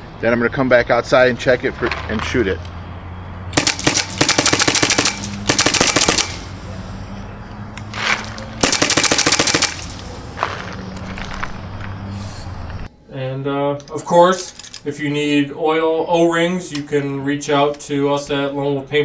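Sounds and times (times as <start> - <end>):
paintball marker firing rapid shots: 3.6 - 6.5, 8.6 - 10.0.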